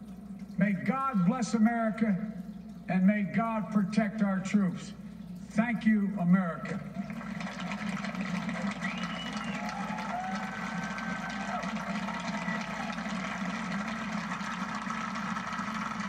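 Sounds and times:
audience applause on television: 0:07.0 - 0:16.0
faint crowd calls: 0:07.4 - 0:16.0.

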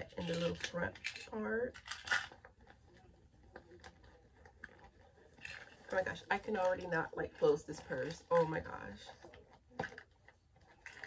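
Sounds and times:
purse rustling: 0:00.0 - 0:11.0
faint clicks and taps: 0:02.1 - 0:11.0.

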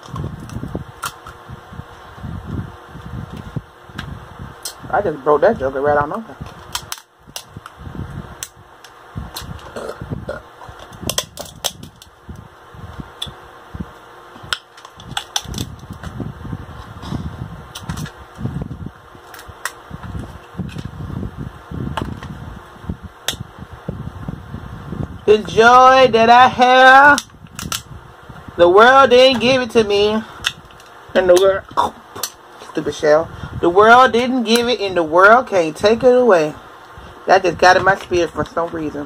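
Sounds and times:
shell cracking and clicking: 0:00.0 - 0:01.4, 0:06.5 - 0:07.8, 0:08.4 - 0:09.7, 0:10.7 - 0:12.2, 0:14.5 - 0:16.1, 0:19.2 - 0:20.9, 0:27.2 - 0:27.9.

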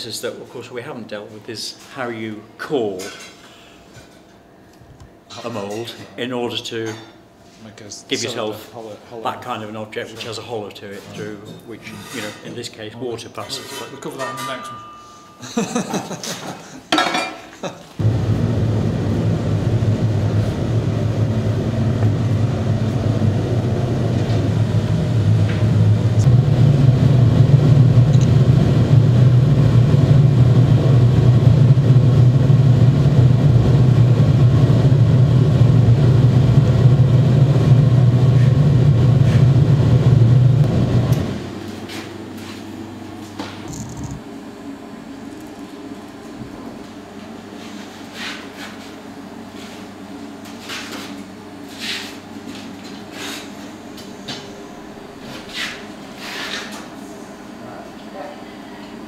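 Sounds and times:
furnace burner rumbling: 0:00.0 - 0:59.0.

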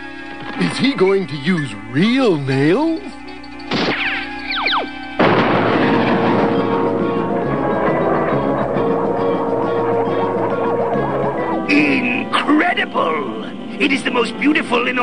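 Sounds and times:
cartoon soundtrack music: 0:03.6 - 0:15.0
quick falling whistles: 0:03.8 - 0:05.0
short hit: 0:05.2 - 0:07.2.

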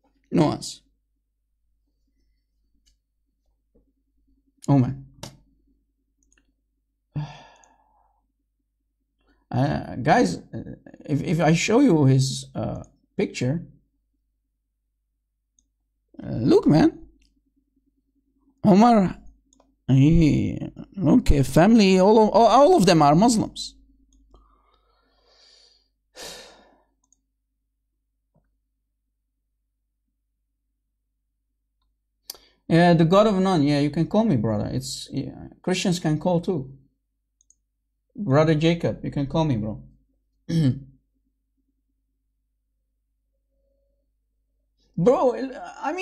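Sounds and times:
faint clicks: 0:06.2 - 0:06.6, 0:37.4 - 0:37.7
man sighing: 0:07.1 - 0:08.2, 0:26.1 - 0:26.8.

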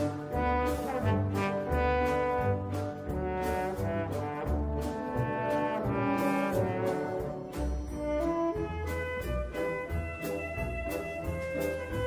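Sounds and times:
band playing foxtrot: 0:00.0 - 0:12.0
brass melody: 0:00.0 - 0:12.0.

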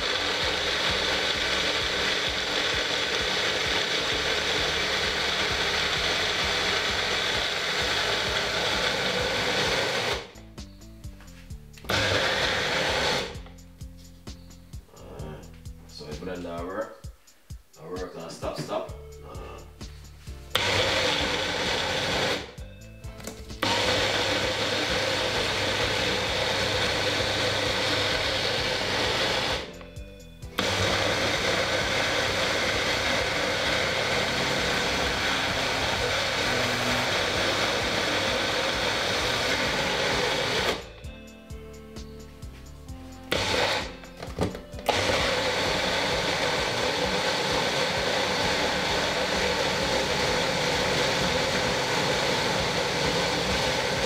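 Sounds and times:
blender motor running: 0:00.0 - 0:10.4, 0:11.8 - 0:13.5, 0:20.5 - 0:29.9, 0:30.5 - 0:41.0, 0:43.3 - 0:54.0.

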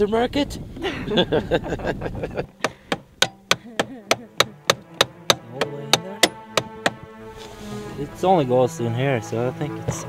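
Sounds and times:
hammer striking wood: 0:02.6 - 0:07.0.

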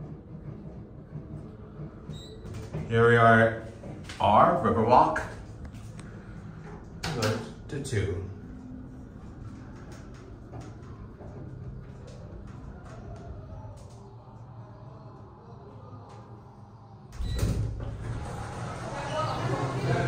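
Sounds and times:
elevator doors sliding open: 0:00.0 - 0:14.3, 0:15.6 - 0:20.0
elevator hum: 0:00.0 - 0:20.0.

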